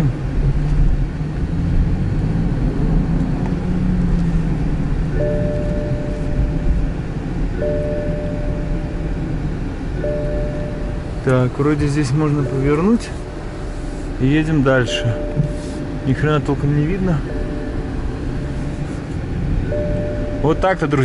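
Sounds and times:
car engine and road rumble: 0.0 - 21.0
electronic tone: 5.1 - 6.8, 7.6 - 9.4, 14.8 - 19.0, 19.6 - 21.0.

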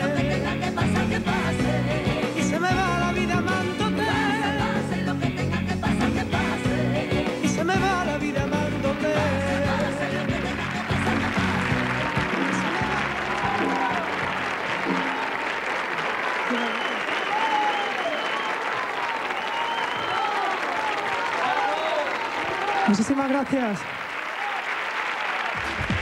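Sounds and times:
live band playing: 0.0 - 16.9
audience applauding: 8.2 - 26.0
crowd shouting: 12.2 - 15.6, 16.5 - 23.0.

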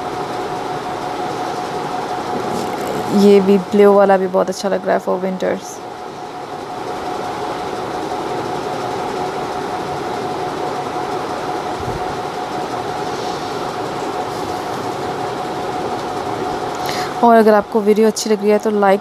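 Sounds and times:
steady mechanical hum: 0.0 - 19.0.

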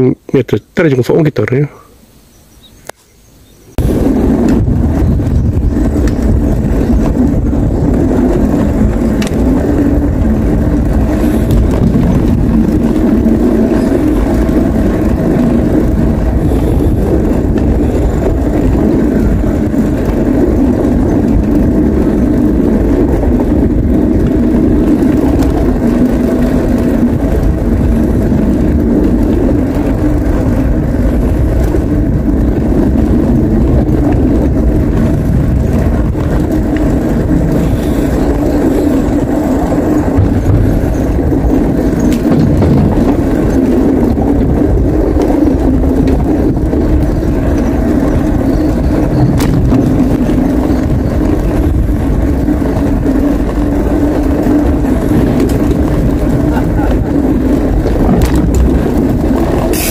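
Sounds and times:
wind rushing over microphone: 0.0 - 59.9
bicycle tyres rolling on pavement: 1.5 - 59.9.

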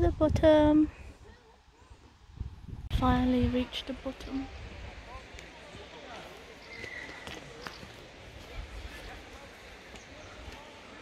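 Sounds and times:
faint voices: 0.7 - 2.4, 3.3 - 11.0.

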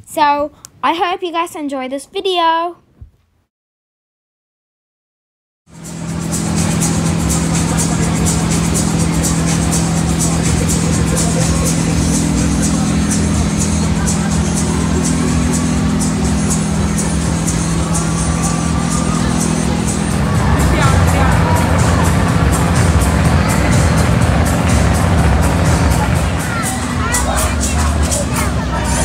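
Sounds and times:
low hum of ride machinery: 5.7 - 29.0
music with a steady beat: 5.7 - 29.0
crowd voices: 5.8 - 29.0.

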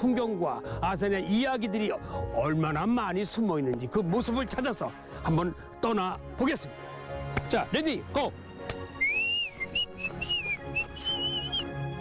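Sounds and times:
background music: 0.0 - 12.0
person whistling a tune: 9.0 - 11.8.

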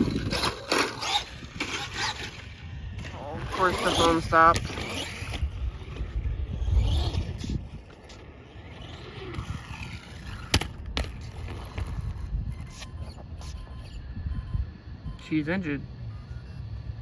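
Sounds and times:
electric motor whine: 0.0 - 17.0
toy truck landing hits: 10.4 - 11.2.

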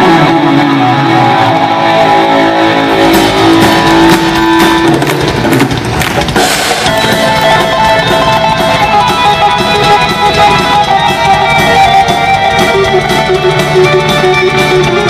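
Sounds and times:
electric guitar solo: 0.0 - 5.8, 6.5 - 15.0
bass guitar: 0.0 - 15.0
drums: 0.0 - 15.0.

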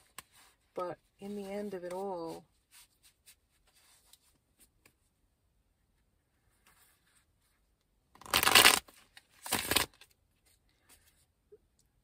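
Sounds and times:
cards riffling: 8.2 - 10.1.

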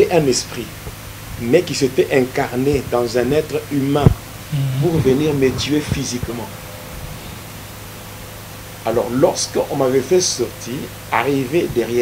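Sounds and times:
faint low hum: 0.0 - 8.2, 8.8 - 12.0
background hiss: 0.0 - 12.0
man speaking: 4.8 - 6.5, 8.9 - 12.0.

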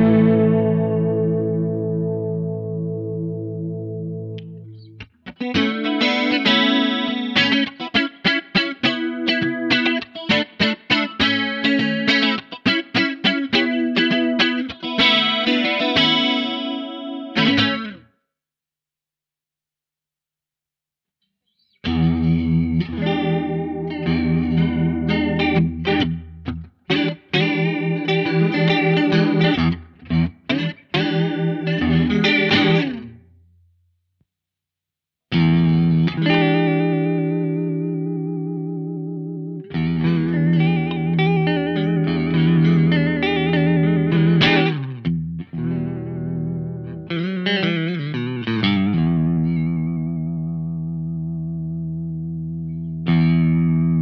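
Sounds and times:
electric guitar chords with chorus: 0.0 - 18.1, 21.8 - 33.2, 35.3 - 54.0.

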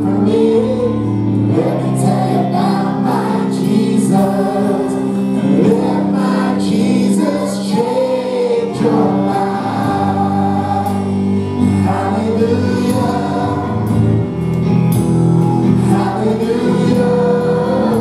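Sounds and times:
congregation singing: 0.0 - 18.0
electric guitar: 0.0 - 18.0
held keyboard chords: 0.0 - 18.0.

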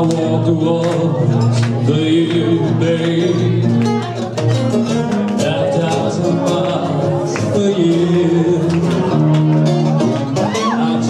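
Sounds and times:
man singing into a microphone: 0.0 - 11.0
strummed acoustic guitars: 0.0 - 11.0.

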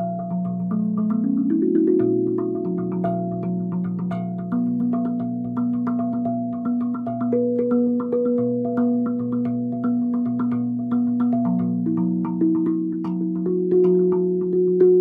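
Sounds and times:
steel tongue drum ringing notes: 0.0 - 15.0.

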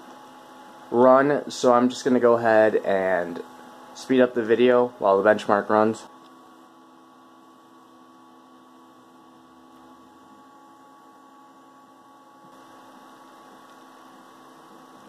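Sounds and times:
faint steady hum with tones: 0.0 - 15.0.

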